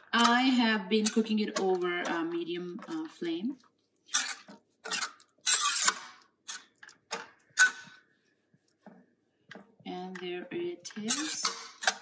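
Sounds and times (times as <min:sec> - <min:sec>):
metal spoon scraping a pot: 0:00.0 - 0:08.1, 0:10.8 - 0:12.0.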